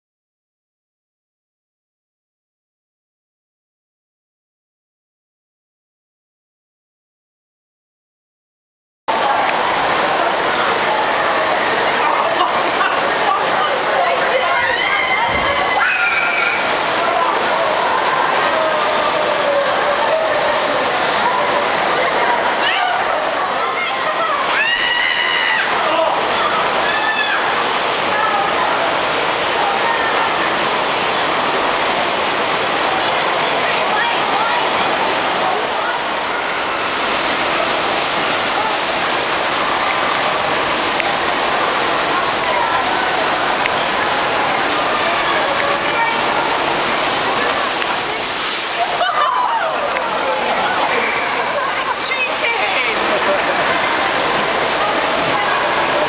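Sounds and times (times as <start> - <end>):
indistinct voices: 9.1 - 56.0
water rushing down slides: 9.1 - 56.0.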